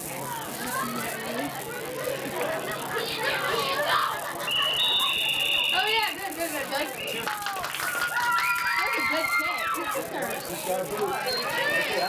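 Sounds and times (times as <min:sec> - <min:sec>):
sideline voices: 0:00.0 - 0:12.0
referee whistles: 0:04.4 - 0:06.1, 0:11.2 - 0:12.0.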